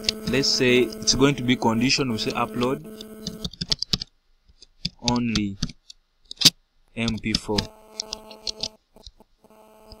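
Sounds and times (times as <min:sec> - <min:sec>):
computer keyboard typing: 0:07.0 - 0:09.2.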